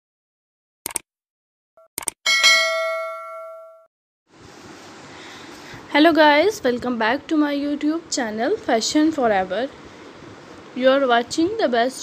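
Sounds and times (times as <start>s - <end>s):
bell ding: 2.3s - 3.9s.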